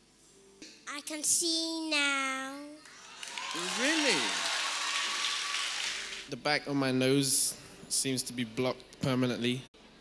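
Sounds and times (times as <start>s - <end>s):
congregation applauding: 2.8s - 6.3s.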